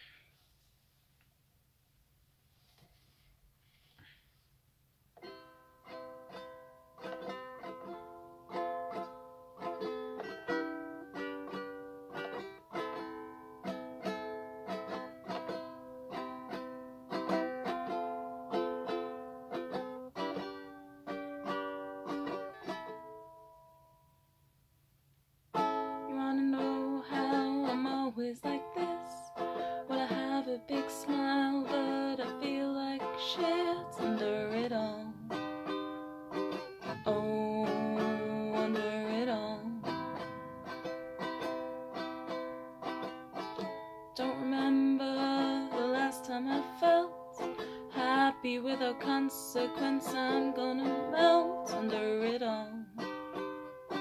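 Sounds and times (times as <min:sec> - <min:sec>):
ukulele playing: 0:05.2 - 0:24.1, 0:25.5 - 0:54.0
person singing: 0:26.0 - 0:35.9, 0:36.8 - 0:41.6, 0:44.2 - 0:53.1.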